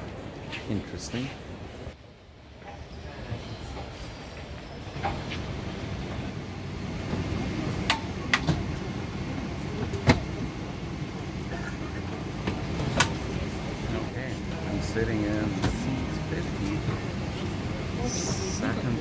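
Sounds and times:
cabin low rumble: 5.0 - 19.0.

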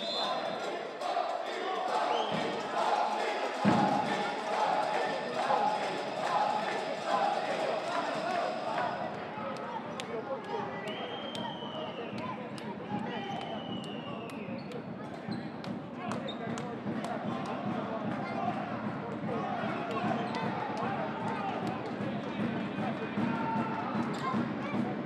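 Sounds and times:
voices of players and crowd: 0.0 - 25.0.

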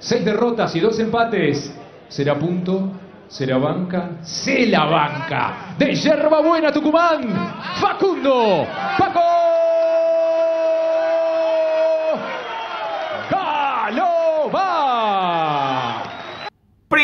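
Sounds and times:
ring announcer shouting: 4.6 - 16.1.

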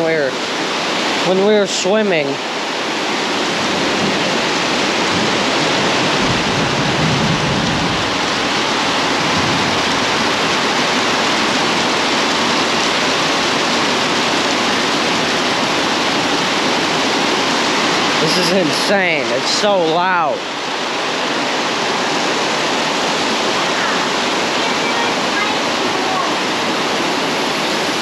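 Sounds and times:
heavy rain on foliage and roof: 0.0 - 28.0.

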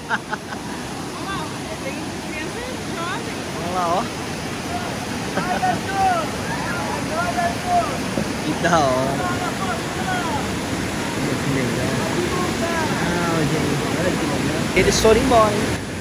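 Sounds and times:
distant voices calling out: 0.0 - 16.0
whitewater rapids rushing: 0.0 - 16.0.

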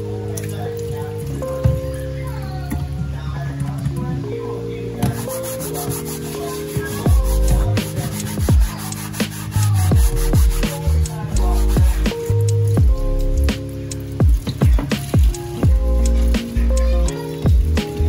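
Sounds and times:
background music with deep bass beat: 0.0 - 18.0
sponge scrubbing cutting board: 5.1 - 12.2.

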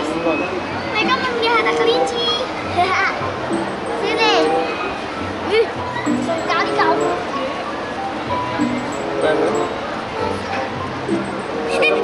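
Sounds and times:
children's voices: 0.8 - 8.1, 9.6 - 12.0
music playing: 1.0 - 12.0.

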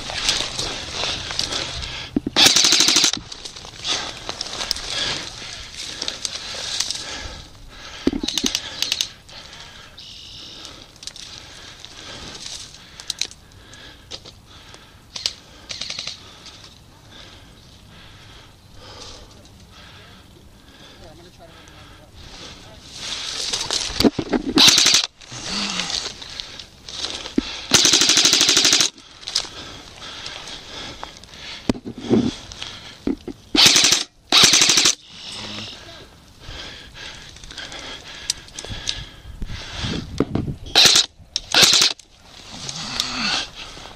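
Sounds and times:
airsoft rifles firing bursts: 2.4 - 3.2, 24.6 - 25.1, 27.7 - 29.0, 33.6 - 35.0, 40.8 - 42.0.

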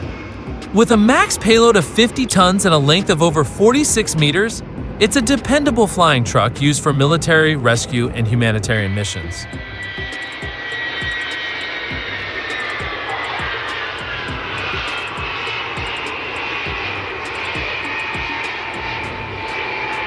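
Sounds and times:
jet engines roaring and whining: 0.0 - 20.0
music beat thumping: 9.6 - 20.0.

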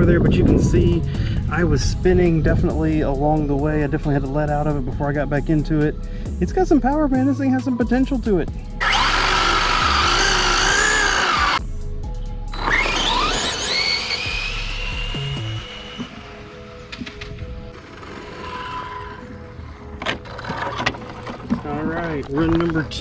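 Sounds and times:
electric motor whining: 8.8 - 11.6, 12.5 - 21.5
rc car accelerating away: 8.8 - 11.6, 12.5 - 16.8, 17.7 - 20.8.

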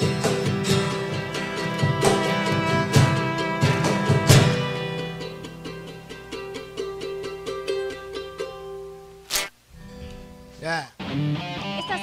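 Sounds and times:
held violin notes: 0.0 - 6.9
plucked acoustic guitars: 0.0 - 12.0
small four-string guitar: 0.0 - 12.0
sharp click: 9.3 - 9.6.

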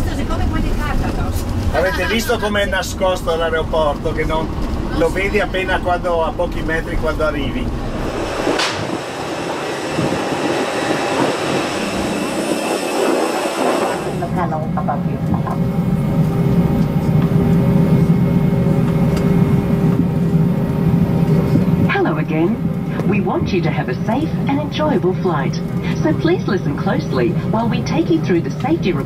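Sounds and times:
airliner cabin hum: 0.0 - 29.0
steady tone: 4.8 - 17.0.

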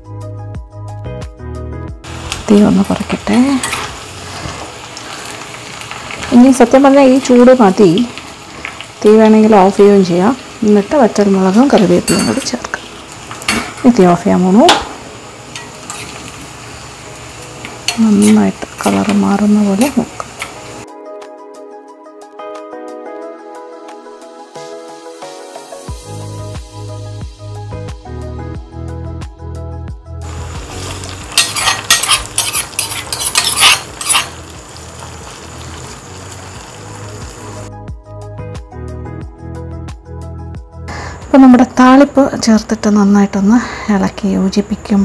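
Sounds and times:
background music: 0.0 - 43.5
shallots sizzling in oil: 2.0 - 20.8, 30.2 - 37.8
steel spoon scraping pan: 15.5 - 16.4, 31.3 - 34.4.

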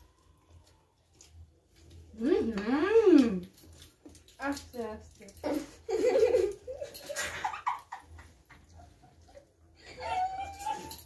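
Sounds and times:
women and girls giggling: 5.4 - 11.0.

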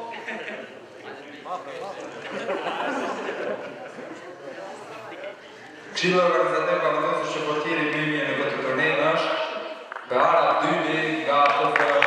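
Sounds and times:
hand clapping: 9.9 - 10.1, 11.4 - 12.0.

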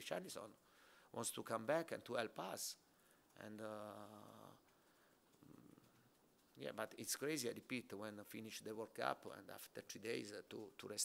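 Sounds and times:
man saying uhh: 3.4 - 4.6.

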